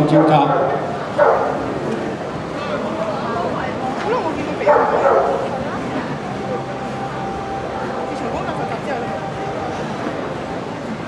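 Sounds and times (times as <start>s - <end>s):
murmur of voices: 0.0s - 11.0s
dog barking: 0.1s - 1.6s, 4.6s - 5.5s.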